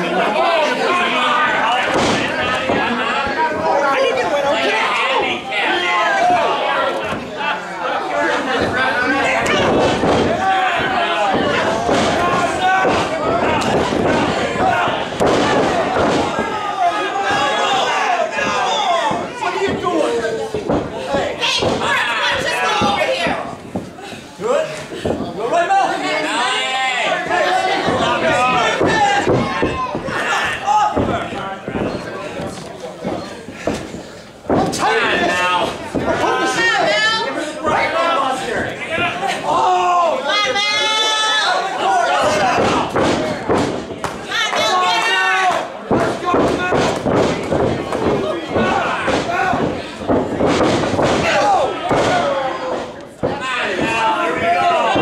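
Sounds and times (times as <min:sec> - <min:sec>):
crowd shouting and cheering: 0:00.0 - 0:55.0
bodies thudding on wrestling ring: 0:09.4 - 0:16.6, 0:45.9 - 0:55.0.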